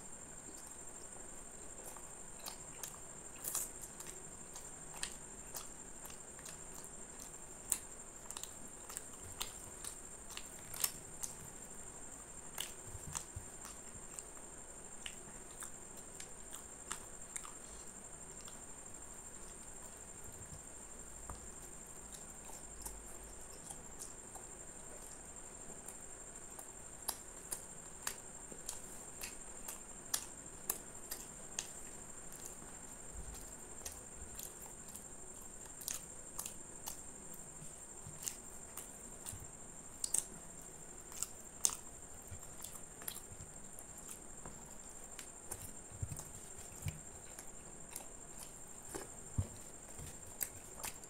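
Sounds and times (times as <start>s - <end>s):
man chewing food: 0.0s - 51.0s.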